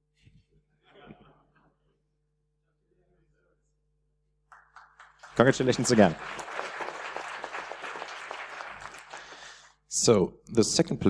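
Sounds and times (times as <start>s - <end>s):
audience applauding: 4.5s - 9.7s.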